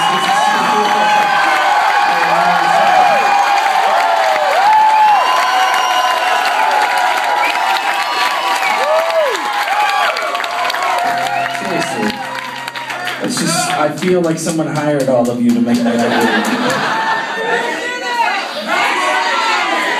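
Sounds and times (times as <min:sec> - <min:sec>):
whistles from crowd: 0:00.0 - 0:01.3, 0:04.9 - 0:06.5, 0:07.4 - 0:09.1
audience cheering and whooping: 0:00.0 - 0:14.0, 0:15.9 - 0:19.9
audience clapping: 0:00.0 - 0:17.6.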